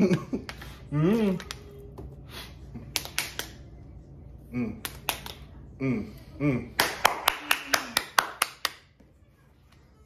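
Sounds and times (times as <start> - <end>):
hand claps: 2.9 - 3.6, 4.8 - 5.5, 6.8 - 9.0.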